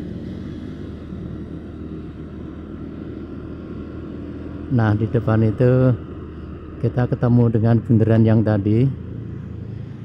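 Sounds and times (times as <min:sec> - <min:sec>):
motorcycle engine cruising: 0:00.0 - 0:10.0
road and wind noise: 0:00.0 - 0:10.0.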